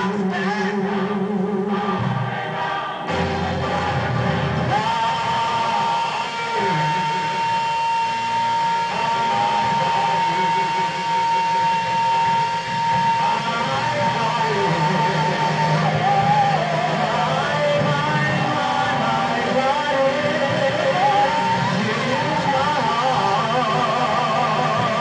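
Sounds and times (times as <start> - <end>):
gospel choir singing: 0.0 - 25.0.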